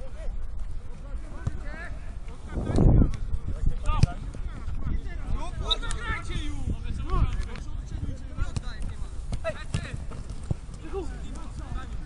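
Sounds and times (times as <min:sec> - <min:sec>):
running footsteps: 0:00.0 - 0:12.0
ball being kicked: 0:01.3 - 0:01.7, 0:02.7 - 0:04.5, 0:08.4 - 0:11.8.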